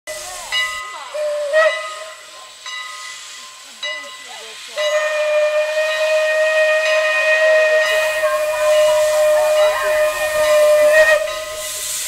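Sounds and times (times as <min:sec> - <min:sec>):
steam locomotive hissing: 0:00.1 - 0:12.0.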